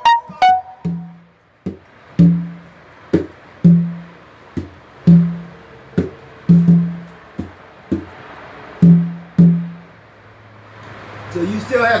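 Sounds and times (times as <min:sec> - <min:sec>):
drum hits: 0:00.0 - 0:08.2, 0:08.8 - 0:09.9.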